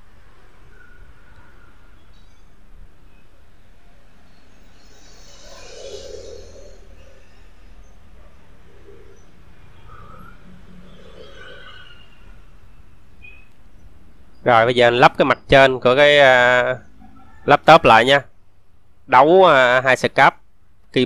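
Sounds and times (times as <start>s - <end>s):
distant bird calls: 4.2s - 14.6s.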